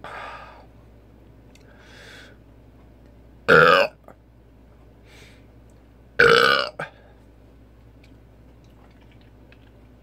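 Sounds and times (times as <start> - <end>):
man burping loudly: 3.5 - 4.0, 6.2 - 6.9.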